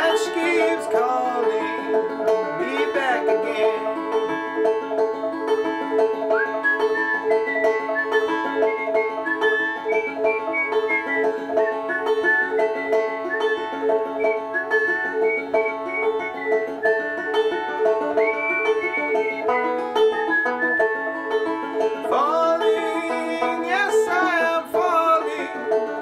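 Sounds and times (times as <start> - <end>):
banjo picking quick notes: 0.0 - 26.0.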